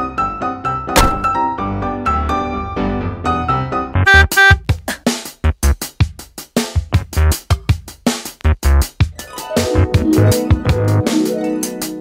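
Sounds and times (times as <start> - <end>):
background music: 0.0 - 12.0
car door thunk: 1.0 - 1.5.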